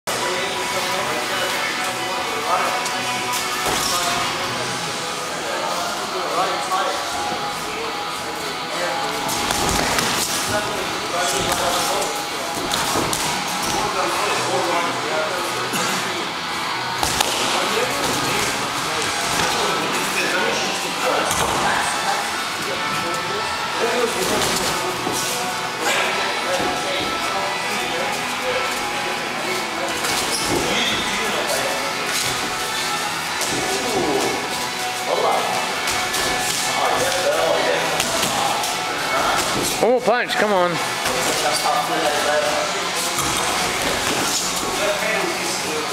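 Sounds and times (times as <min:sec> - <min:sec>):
background music: 0:00.1 - 0:45.9
indistinct voices: 0:00.1 - 0:45.9.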